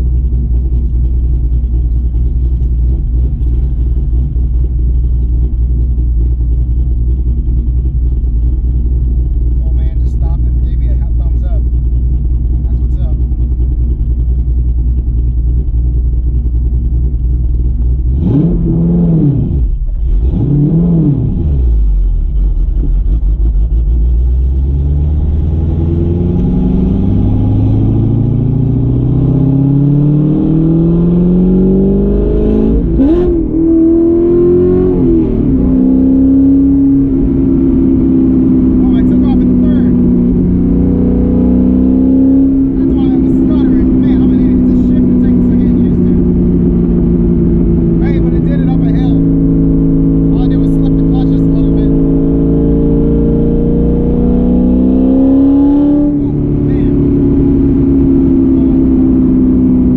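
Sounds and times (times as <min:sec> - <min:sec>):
car engine idling: 0:00.0 - 0:59.9
engine revving: 0:00.0 - 0:59.9
car accelerating through gears: 0:18.1 - 0:21.8, 0:24.1 - 0:59.9.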